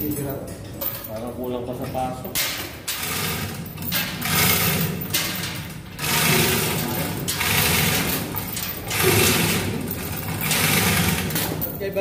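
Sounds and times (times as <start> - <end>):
engine mechanical clatter: 3.0 - 11.7.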